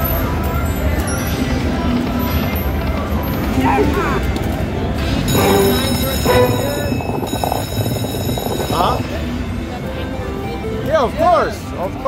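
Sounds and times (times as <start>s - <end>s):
background chatter: 0.0s - 12.0s
electronic slot machine music: 5.0s - 9.5s
chiming tones: 5.3s - 9.2s.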